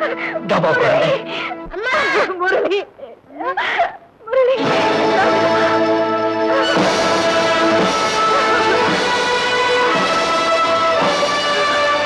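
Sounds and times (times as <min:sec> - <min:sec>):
woman wailing and sobbing: 0:00.0 - 0:12.0
orchestral background music: 0:04.6 - 0:12.0.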